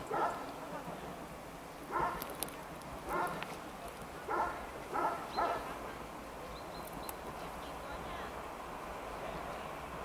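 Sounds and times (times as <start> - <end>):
dog barking: 0.1 - 0.4, 1.9 - 2.2, 3.1 - 3.4, 4.3 - 5.7.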